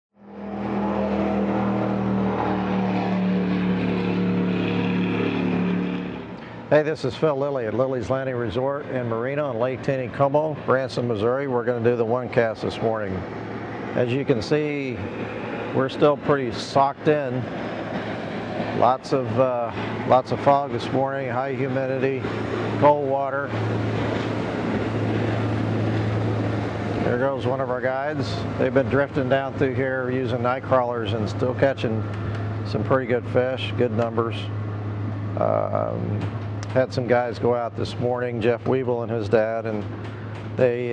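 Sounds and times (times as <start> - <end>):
engine running steadily: 0.2 - 40.9.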